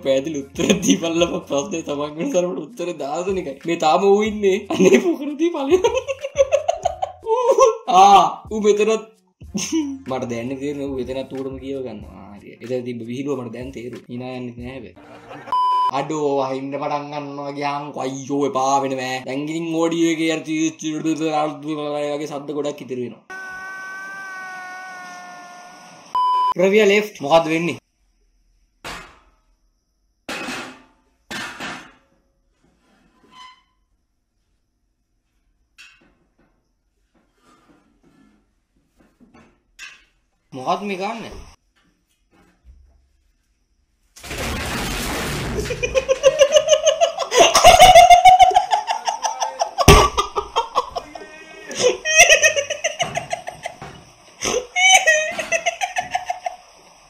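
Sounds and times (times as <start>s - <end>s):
man laughing: 0.5s - 1.8s, 4.6s - 8.2s, 9.6s - 10.1s, 45.6s - 56.8s.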